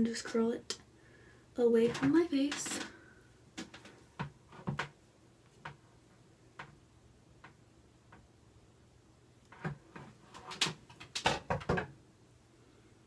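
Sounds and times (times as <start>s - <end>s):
clicks and rustles of hair handling: 1.8s - 3.0s.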